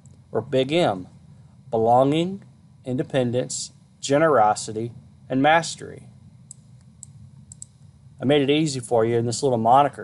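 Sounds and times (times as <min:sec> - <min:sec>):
low steady hum: 0:00.0 - 0:10.0
faint sharp computer clicks: 0:06.4 - 0:07.8.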